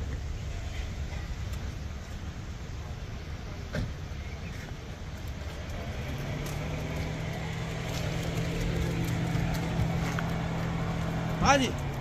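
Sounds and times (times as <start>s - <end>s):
idling engines rumble: 0.0s - 12.0s.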